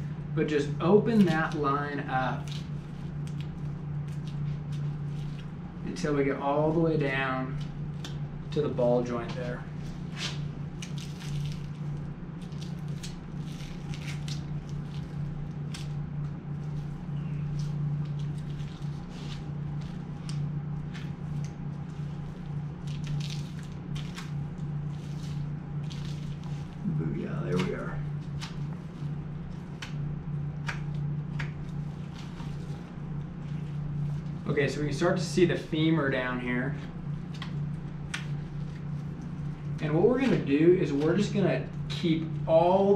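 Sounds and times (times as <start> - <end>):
steady low hum: 0.0 - 42.9.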